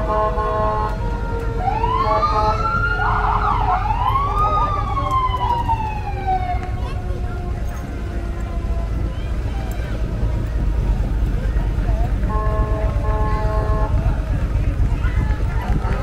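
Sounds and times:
emergency vehicle siren: 0:00.0 - 0:13.6
vehicle engines rumbling: 0:00.0 - 0:16.0.

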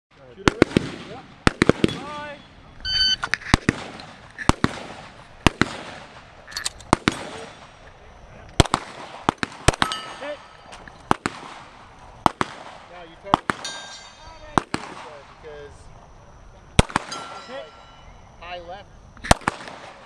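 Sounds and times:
short electronic beep: 0:02.8 - 0:03.3.

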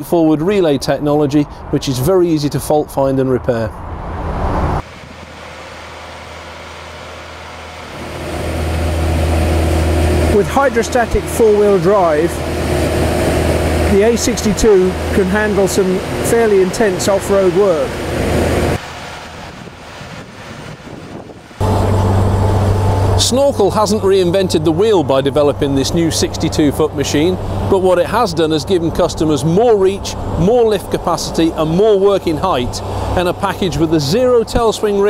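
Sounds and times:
diesel engine running: 0:04.3 - 0:35.0.

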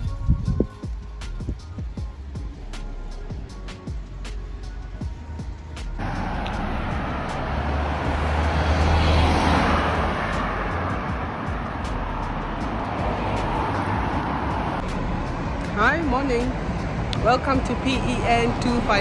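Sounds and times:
road traffic passing: 0:00.8 - 0:19.0.

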